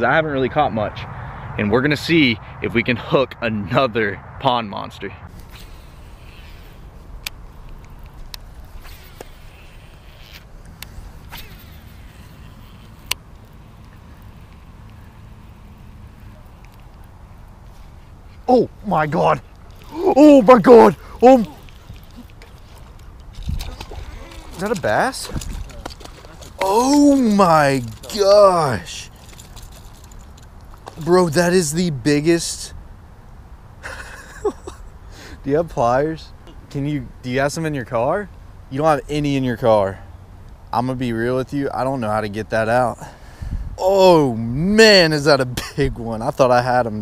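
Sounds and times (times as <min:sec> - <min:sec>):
low steady hiss: 0:02.1 - 0:47.0
fishing reel cranking: 0:08.8 - 0:13.2
fish splashing in water: 0:21.5 - 0:28.0.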